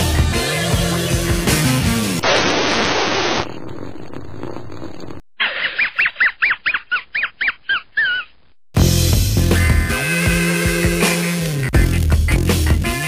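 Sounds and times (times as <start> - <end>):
hissing noise: 2.2 - 5.2.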